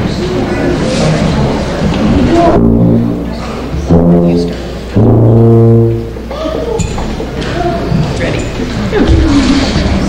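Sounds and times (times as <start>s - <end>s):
tuba playing low notes: 2.1s - 6.6s.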